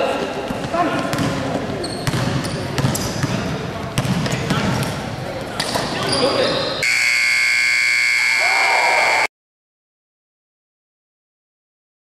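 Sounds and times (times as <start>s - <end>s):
scoreboard buzzer tone: 6.8s - 9.3s.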